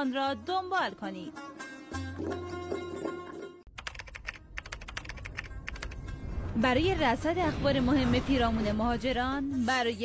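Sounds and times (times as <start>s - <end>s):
keyboard typing: 3.7s - 6.0s.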